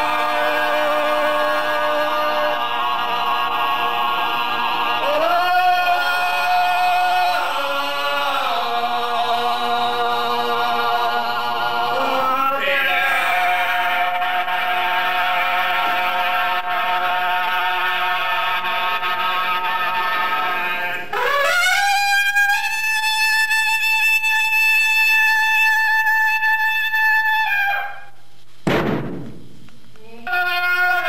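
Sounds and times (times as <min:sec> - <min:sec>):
men's group chant: 0:00.0 - 0:21.1
trumpet long note: 0:21.1 - 0:28.1.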